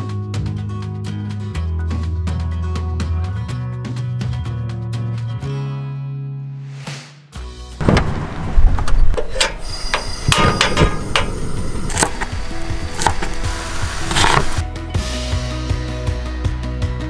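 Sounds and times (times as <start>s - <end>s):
background music: 11.5s - 17.0s
knife chopping on plastic board: 12.9s - 14.6s.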